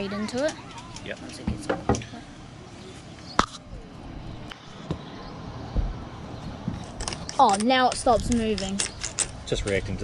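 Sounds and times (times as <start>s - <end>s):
low thump: 5.7s - 6.8s.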